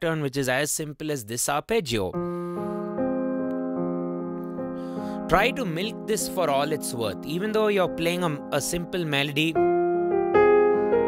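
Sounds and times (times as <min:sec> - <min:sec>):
digital piano bass arpeggio: 0:02.2 - 0:11.0.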